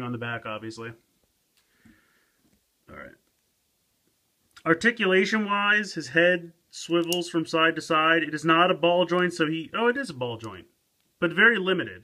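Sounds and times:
person speaking: 0.0 - 1.1, 2.8 - 3.3, 4.5 - 12.0
faint breath through nose: 1.6 - 2.5.

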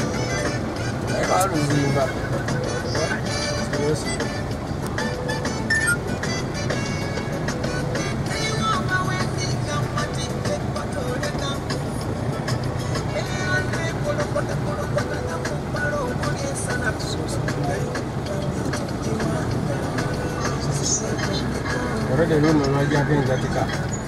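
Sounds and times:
car engine and road rumble: 0.0 - 24.0
music playing in car: 0.0 - 24.0.

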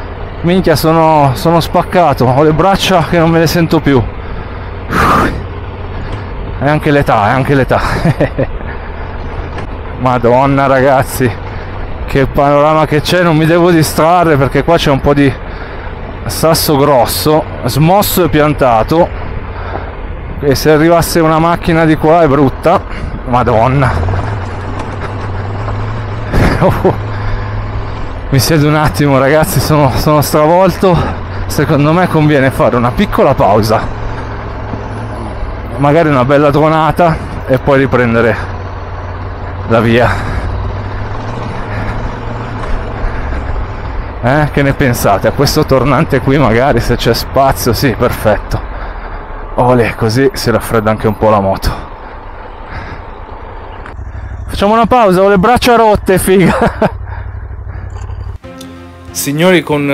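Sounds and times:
motorcycle engine at low speed: 0.0 - 59.1.

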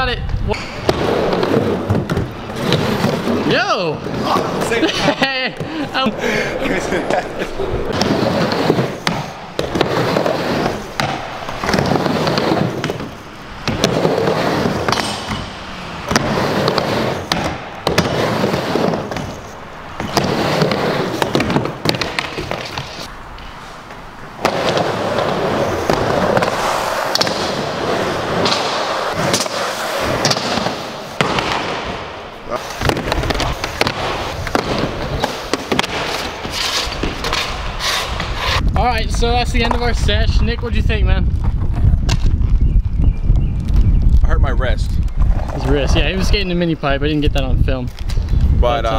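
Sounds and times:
skateboard wheels rolling: 0.3 - 48.9
board sliding on metal rail: 7.9 - 31.2, 32.6 - 38.6.

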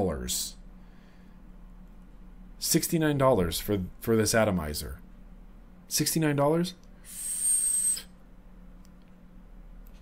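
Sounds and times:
e-cigarette airy hiss: 7.0 - 8.1
thin high whistle: 7.0 - 8.2.

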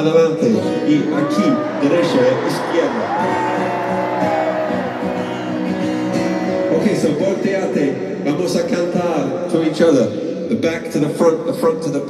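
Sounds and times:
voices in live music: 0.0 - 12.0.

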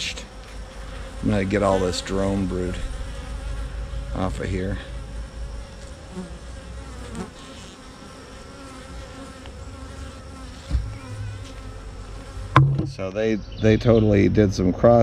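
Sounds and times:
bees buzzing: 0.0 - 14.2
dull thump: 10.6 - 11.4, 12.5 - 13.1.

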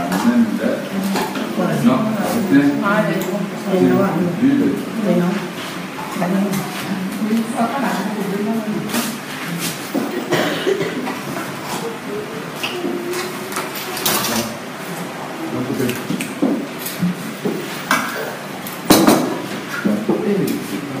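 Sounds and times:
people talking: 0.0 - 16.3, 19.7 - 21.0.

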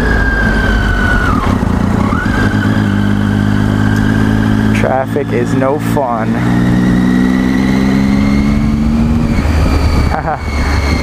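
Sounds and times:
high whine: 0.0 - 11.0
motorcycle engine running: 0.0 - 11.0
wind rush: 7.8 - 11.0.

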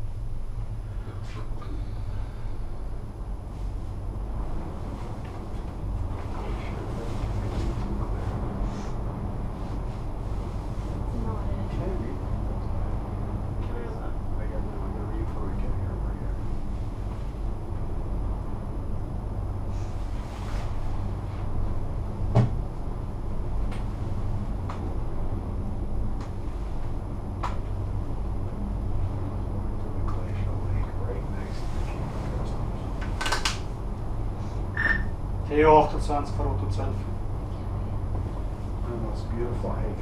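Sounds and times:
gondola cabin ride rumble: 0.0 - 40.0
faint passenger voices: 0.7 - 18.4, 27.6 - 34.8, 35.4 - 40.0
high-pitched squeak: 34.8 - 35.1.

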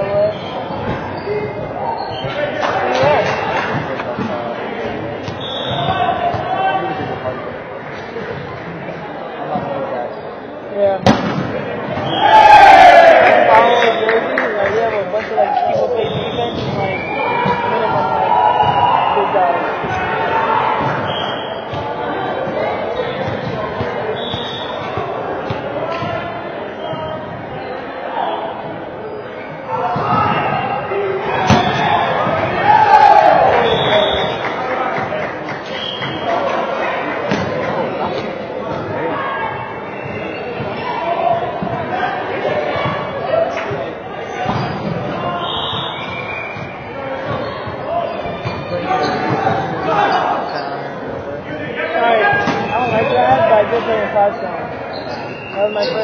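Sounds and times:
background chatter in a gym: 0.0 - 56.0
volleyball being struck: 11.0 - 11.5, 31.4 - 31.9
players shouting: 11.0 - 28.6, 29.5 - 35.1.

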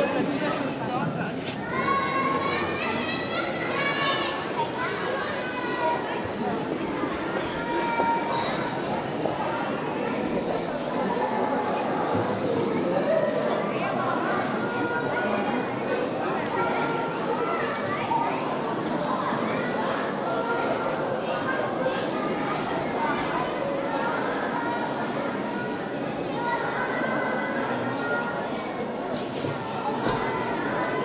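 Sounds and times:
children talking and calling out: 0.0 - 31.0
murmur of background chatter: 0.0 - 31.0.

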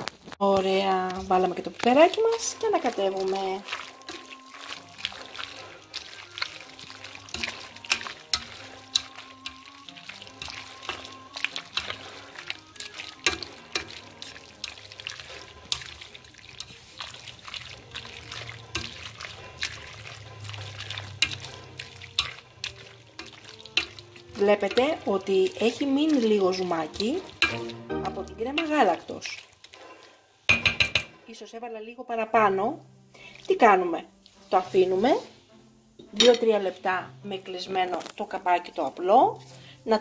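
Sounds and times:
faint soft music: 0.3 - 40.0
utensil stirring pasta in pot: 0.4 - 31.3.

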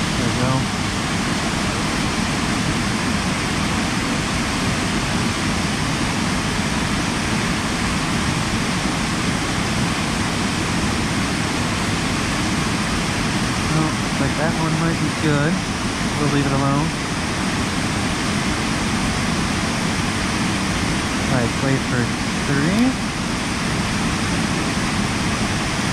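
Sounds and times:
man speaking: 0.0 - 0.7, 13.7 - 15.6, 16.2 - 17.0, 21.2 - 23.0.

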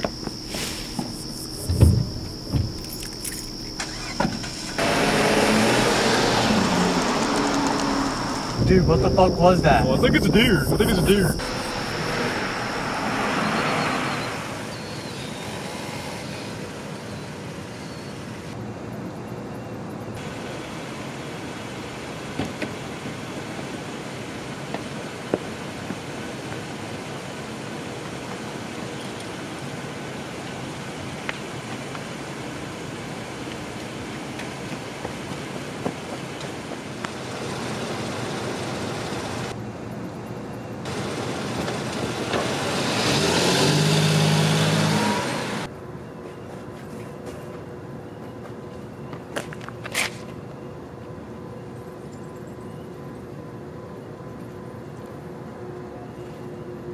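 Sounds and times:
deep pitched hum: 0.0 - 4.7, 6.6 - 14.2
car engine running: 1.3 - 13.6.

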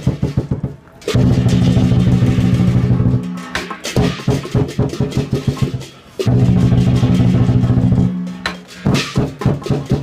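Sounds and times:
fast drum roll: 0.0 - 3.3, 4.0 - 10.0
loud drum beats: 0.0 - 10.0
cymbal crashes: 1.1 - 9.4.

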